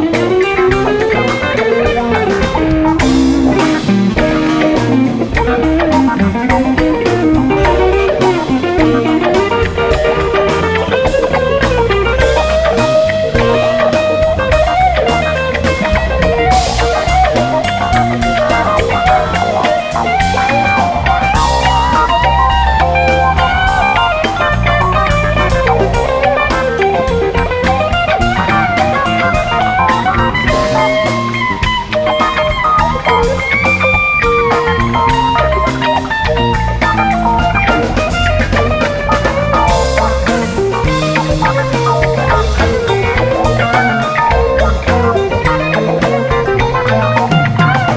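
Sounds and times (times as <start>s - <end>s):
lead guitar melody: 0.0s - 47.9s
rock band playing: 0.0s - 47.9s.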